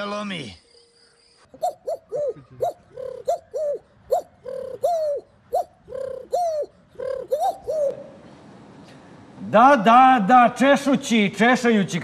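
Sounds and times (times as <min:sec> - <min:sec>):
man imitating bird calls: 0:01.6 - 0:08.2.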